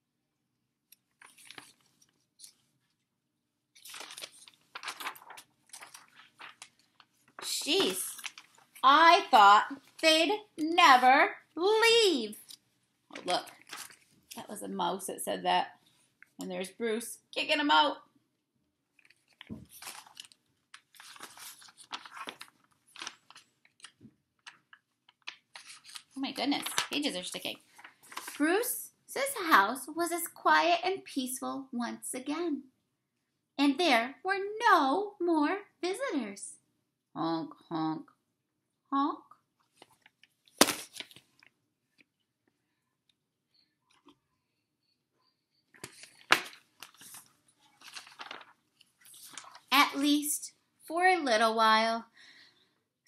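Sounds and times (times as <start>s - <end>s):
book pages rustling and crackling: 1.0s - 3.0s, 3.7s - 10.2s, 12.3s - 14.5s, 18.9s - 28.5s, 39.6s - 42.1s, 45.7s - 50.2s.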